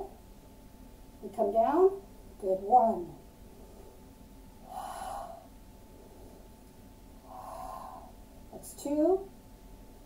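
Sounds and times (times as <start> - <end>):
woman breathing: 3.4 - 8.3.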